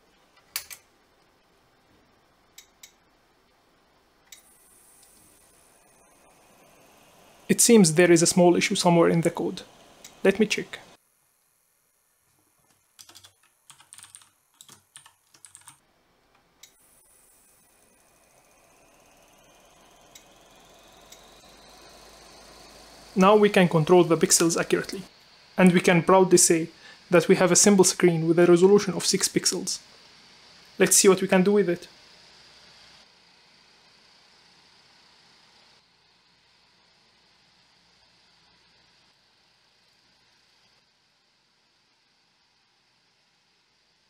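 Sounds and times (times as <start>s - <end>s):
faint steady hiss: 0.0s - 44.0s
small electric fan motor whine: 0.0s - 44.0s
computer keyboard typing: 12.8s - 15.8s.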